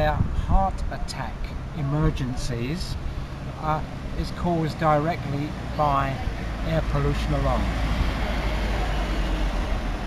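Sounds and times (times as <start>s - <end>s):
road noise: 0.0s - 10.0s
vehicle engine rumbling: 0.0s - 10.0s.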